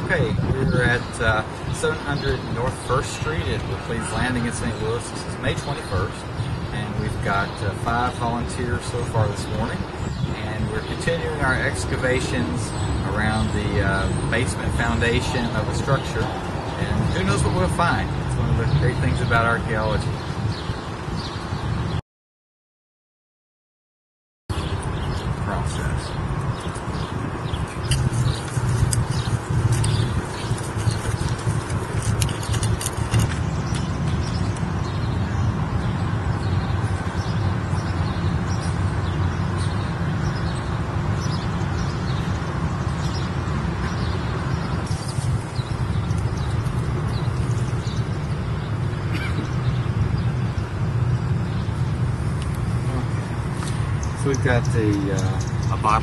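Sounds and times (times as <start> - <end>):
wind rumble on microphone: 0.0 - 22.0, 24.5 - 56.0.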